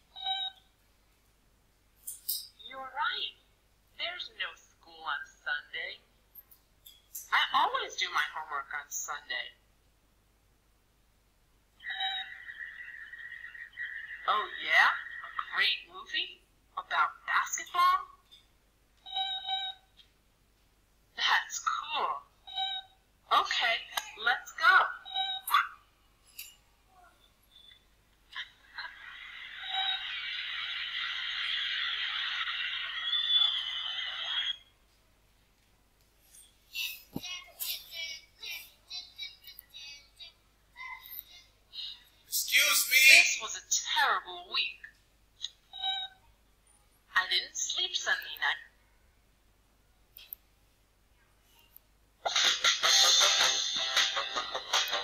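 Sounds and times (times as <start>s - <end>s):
dense steady noise: 1.3s - 18.9s.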